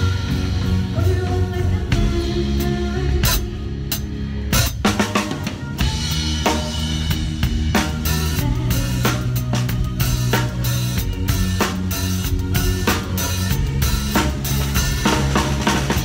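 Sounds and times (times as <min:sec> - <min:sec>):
drum kit playing: 0:00.0 - 0:16.0
sustained low band notes: 0:00.0 - 0:16.0.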